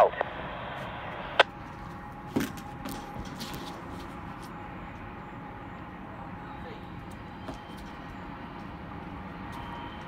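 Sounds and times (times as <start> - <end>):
train cars rumbling past: 1.5 - 10.0.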